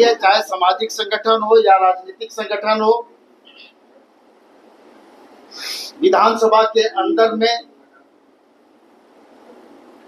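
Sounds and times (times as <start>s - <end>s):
soft high hiss: 0.0s - 10.0s.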